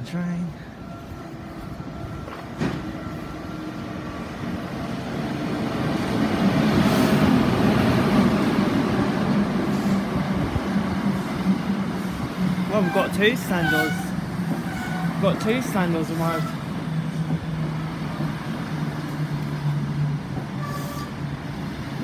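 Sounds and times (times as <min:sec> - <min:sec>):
train rumble and wheel noise: 0:00.0 - 0:22.0.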